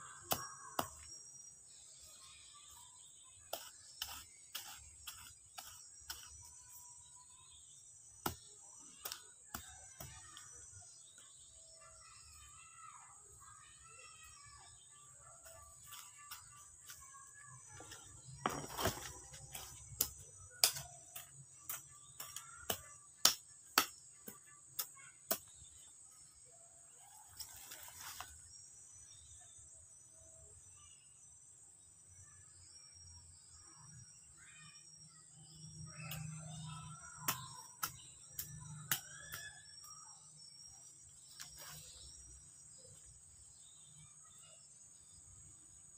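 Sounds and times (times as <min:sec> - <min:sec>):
hand hoe chopping into soil: 0:03.5 - 0:06.5, 0:17.8 - 0:25.5.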